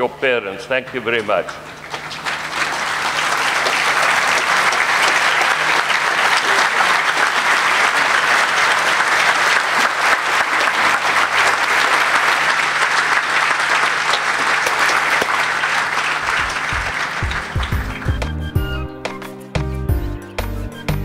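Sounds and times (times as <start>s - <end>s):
audience applauding: 1.2s - 19.3s.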